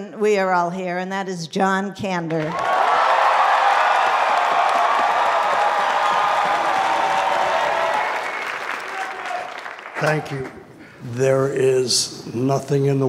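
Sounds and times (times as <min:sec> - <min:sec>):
large audience applauding: 0:02.4 - 0:10.6.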